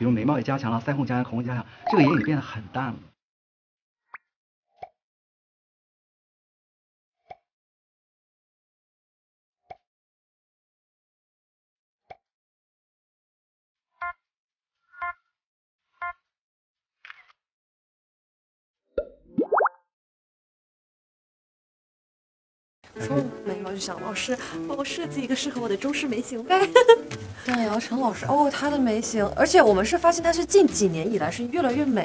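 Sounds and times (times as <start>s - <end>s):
cartoon pop: 19.0s - 19.8s.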